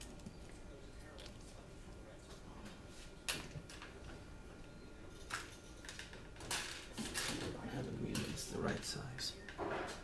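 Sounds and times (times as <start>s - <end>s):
faint room noise: 0.0s - 10.0s.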